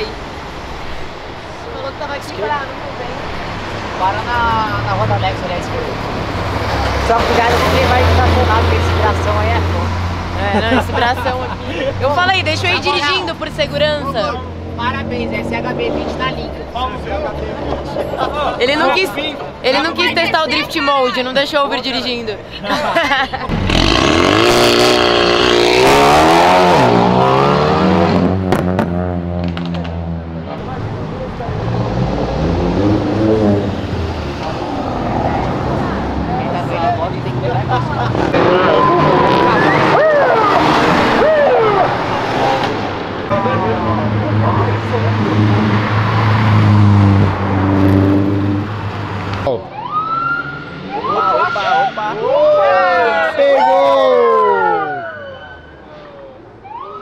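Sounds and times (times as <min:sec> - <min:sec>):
cars revving and passing: 0:00.0 - 0:57.0
car accelerating hard: 0:23.5 - 0:36.7, 0:37.3 - 0:52.0
siren wailing: 0:38.5 - 0:42.1, 0:49.6 - 0:51.9, 0:52.5 - 0:57.0.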